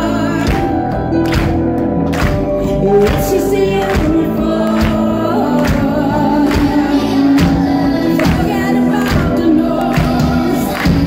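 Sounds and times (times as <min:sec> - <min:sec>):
woman singing lead vocal: 0:00.0 - 0:01.6, 0:02.4 - 0:11.0.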